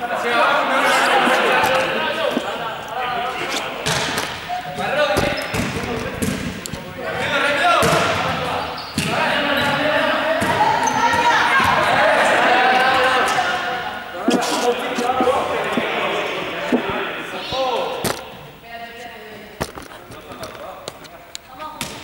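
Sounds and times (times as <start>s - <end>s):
exercise ball thumping on floor: 16.7s - 17.1s.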